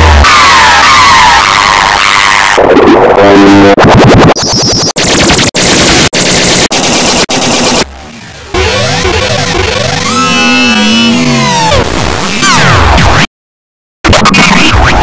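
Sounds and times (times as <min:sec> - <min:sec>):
distorted warped music: 0:00.0 - 0:13.2, 0:14.1 - 0:15.0.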